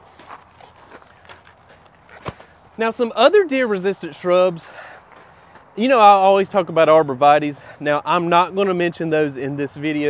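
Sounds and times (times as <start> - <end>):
soft footsteps: 0.0 - 2.8, 4.5 - 5.8.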